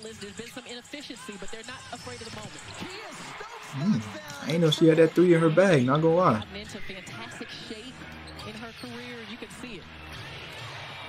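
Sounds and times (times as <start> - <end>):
commentator talking: 3.2 - 7.2.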